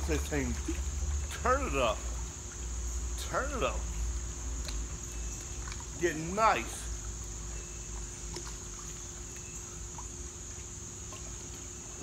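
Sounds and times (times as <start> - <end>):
insect chorus droning: 0.0 - 12.0
small splashes of water: 0.0 - 12.0.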